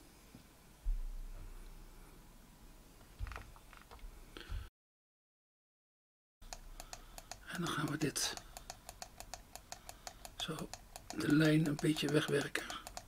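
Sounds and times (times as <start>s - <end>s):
fast computer clicking: 6.5s - 13.0s
man speaking: 7.5s - 8.4s, 10.4s - 13.0s.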